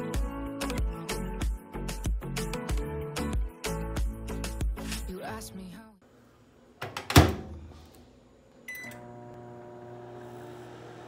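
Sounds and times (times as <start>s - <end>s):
microwave oven humming: 8.6s - 11.0s.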